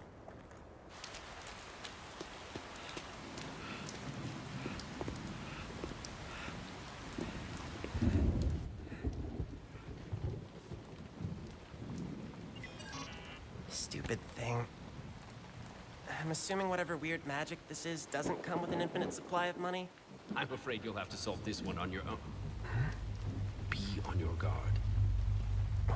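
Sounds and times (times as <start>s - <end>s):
steady rain falling: 0.0s - 25.9s
thunder rolling: 7.1s - 12.6s, 18.2s - 25.9s.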